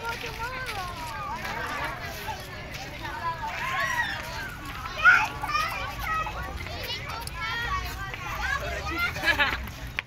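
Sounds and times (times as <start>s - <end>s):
voices of people and children: 0.0s - 10.0s.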